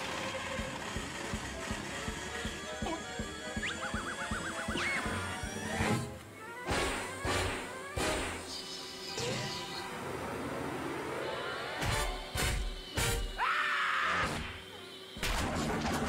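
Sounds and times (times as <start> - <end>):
orchestral cartoon music: 0.2 - 8.4.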